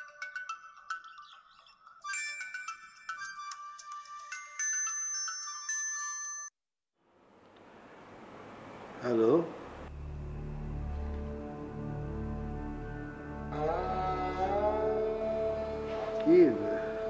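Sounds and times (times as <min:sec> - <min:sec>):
phone ringtone electronic melody: 0:00.0 - 0:06.5.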